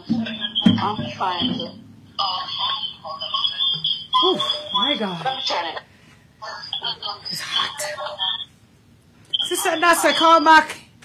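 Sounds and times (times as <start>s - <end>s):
high-pitched whine: 0.0s - 8.5s.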